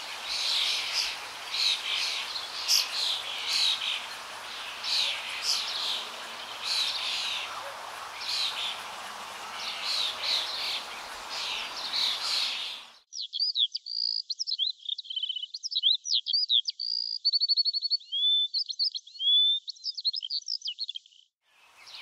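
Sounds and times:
birds chirping: 0.0 - 13.0, 21.6 - 22.0
steady hiss: 0.0 - 13.0.

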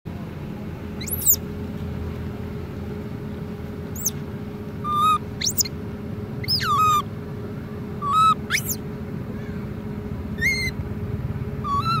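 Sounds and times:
low background hum: 0.1 - 12.0
baby monkey squeaking: 1.0 - 1.4, 3.9 - 4.2, 4.8 - 5.8, 6.4 - 7.1, 8.0 - 8.8, 10.4 - 10.8, 11.6 - 12.0.

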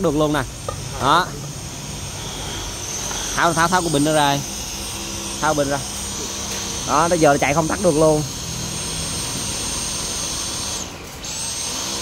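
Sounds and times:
vacuum motor whining: 0.6 - 12.0.

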